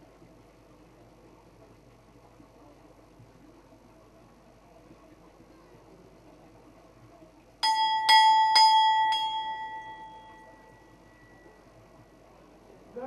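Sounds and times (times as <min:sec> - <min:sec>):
temple bell ringing: 0:07.6 - 0:11.6.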